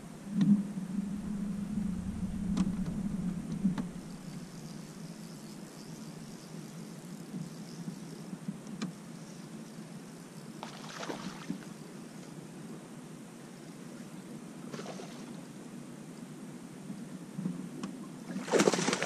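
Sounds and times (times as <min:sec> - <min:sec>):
electric trolling motor humming: 0:00.0 - 0:12.7
fish splashing in water: 0:10.6 - 0:11.5, 0:18.3 - 0:19.0.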